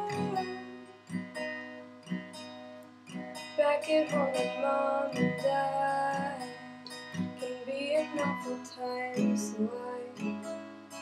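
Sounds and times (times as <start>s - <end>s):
person singing: 0.0s - 1.1s, 3.6s - 6.6s, 7.6s - 10.4s
acoustic guitar strumming: 0.0s - 11.0s.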